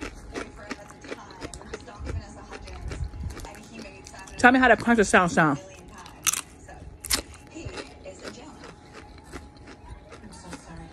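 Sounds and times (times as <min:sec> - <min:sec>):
crunchy chip bites: 0:00.0 - 0:04.4, 0:05.9 - 0:10.7
chewing crunches: 0:00.0 - 0:10.9.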